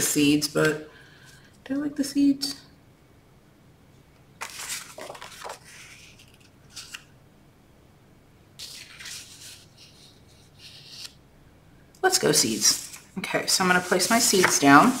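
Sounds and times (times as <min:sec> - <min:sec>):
paper rustling and sliding: 0:04.4 - 0:07.1, 0:08.6 - 0:11.2, 0:12.3 - 0:15.0.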